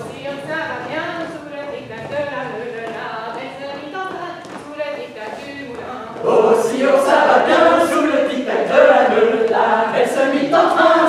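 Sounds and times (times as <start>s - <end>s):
group singing unaccompanied: 5.7s - 11.0s.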